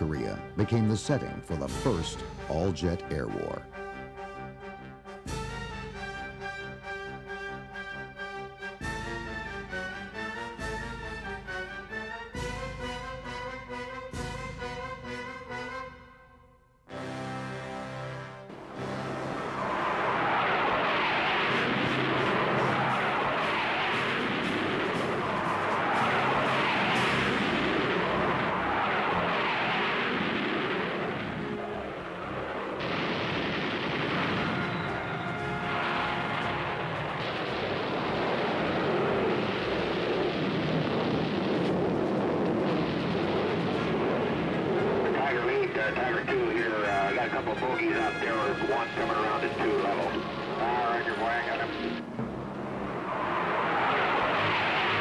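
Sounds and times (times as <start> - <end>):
jet fighter engines roaring: 18.5 - 55.0
pilots' radio voices: 45.0 - 52.0.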